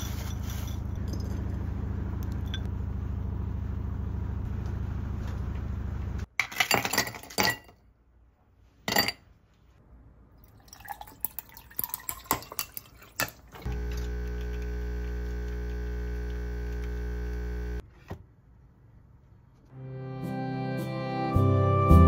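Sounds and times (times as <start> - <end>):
coffee machine pump humming: 13.6 - 17.8.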